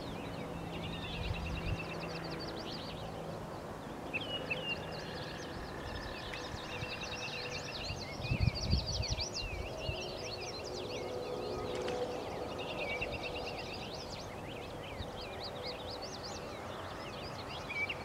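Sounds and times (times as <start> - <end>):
songbirds chirping and singing: 0.0 - 18.0.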